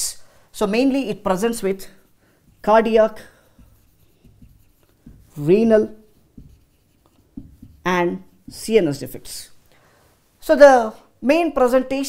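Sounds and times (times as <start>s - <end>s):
marker writing on a whiteboard: 0.0s - 9.6s.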